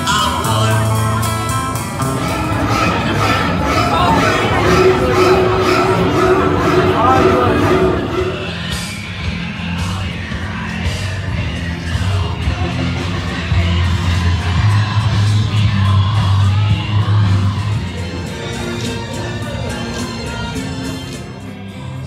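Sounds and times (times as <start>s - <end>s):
music with heavy bass line: 0.0s - 9.6s
vocals: 0.0s - 22.0s.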